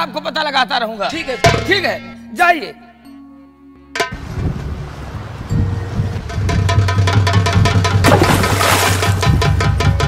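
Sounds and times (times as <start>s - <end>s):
loud water splash: 8.0s - 9.4s.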